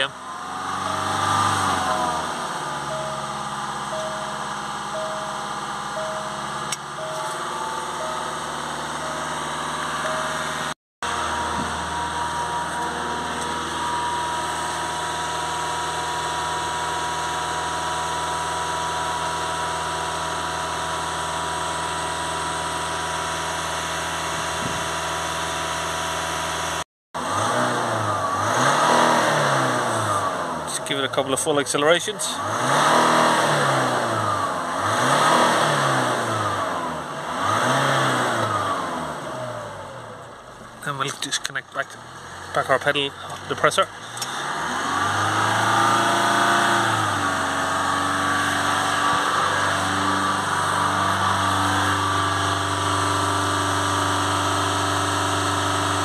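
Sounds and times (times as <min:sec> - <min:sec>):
diesel engine at raised revs: 0:00.0 - 0:56.0.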